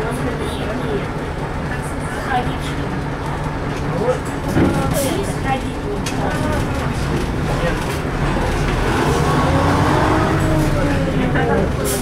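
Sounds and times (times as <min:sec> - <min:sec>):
low rumble of moving vehicle: 0:00.0 - 0:12.0.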